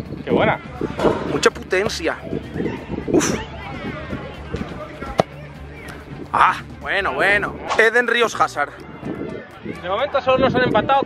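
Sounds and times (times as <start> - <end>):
faint background music: 0.0 - 11.0
voices: 0.3 - 10.8
football kicked: 5.1 - 5.4.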